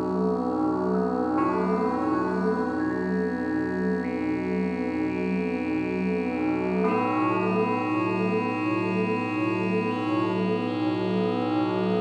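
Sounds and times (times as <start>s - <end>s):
droning synthesizer chords: 0.0s - 12.0s.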